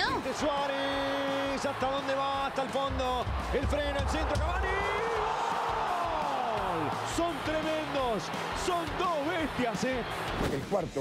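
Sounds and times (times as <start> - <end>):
commentator shouting: 0.0 - 10.0
stadium crowd cheering: 0.0 - 10.8.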